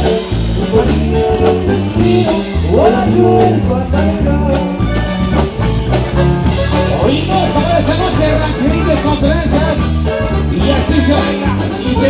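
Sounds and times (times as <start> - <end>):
button accordion: 0.0 - 12.0
drum kit steady beat: 0.0 - 12.0
electric bass: 0.0 - 12.0.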